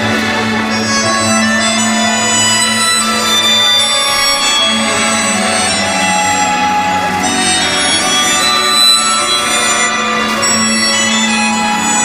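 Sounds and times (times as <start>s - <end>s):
music over sound system: 0.0s - 12.0s.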